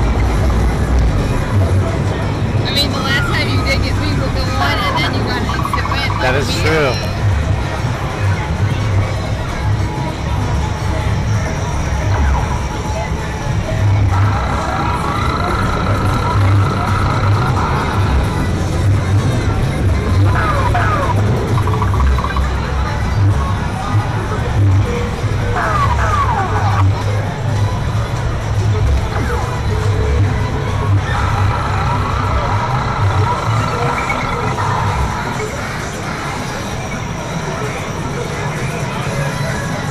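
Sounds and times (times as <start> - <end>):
background chatter: 0.0 - 39.9
electronic game machine music: 4.6 - 7.4, 12.1 - 23.0, 29.1 - 38.8
steady high electronic tone: 5.1 - 7.2, 14.0 - 18.3.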